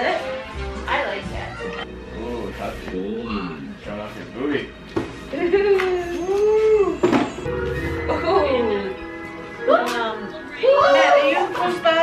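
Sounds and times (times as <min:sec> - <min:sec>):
music playing: 0:06.8 - 0:12.0.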